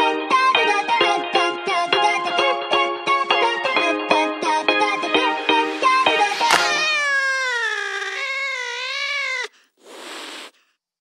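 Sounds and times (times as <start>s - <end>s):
short burst of hiss: 9.8s - 10.5s.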